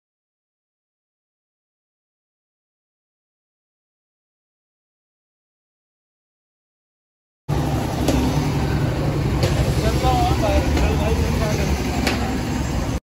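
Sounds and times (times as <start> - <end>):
street traffic rumble: 7.5 - 13.0
faint voices: 8.5 - 12.8.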